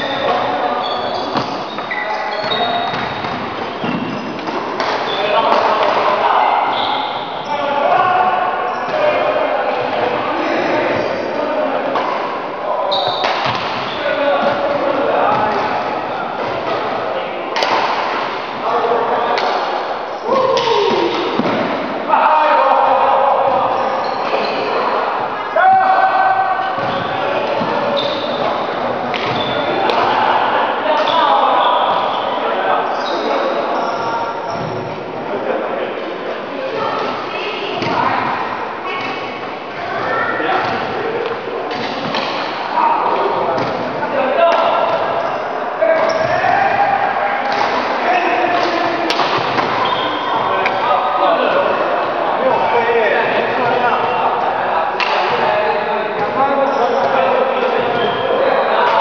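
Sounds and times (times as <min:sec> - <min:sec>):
people talking in echoing hall: 0:00.0 - 0:59.0.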